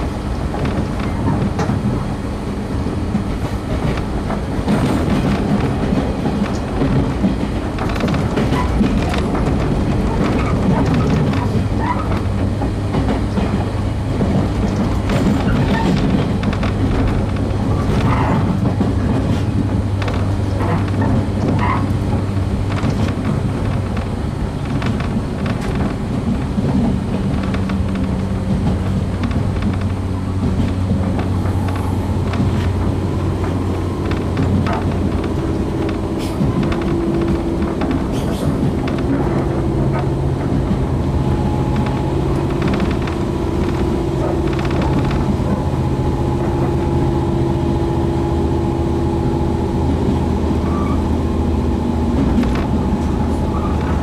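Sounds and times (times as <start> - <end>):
train wheels rumbling on rail: 0.0 - 54.0
clicks over rail joints: 3.1 - 47.3, 52.0 - 54.0
traction motor hum: 26.6 - 54.0.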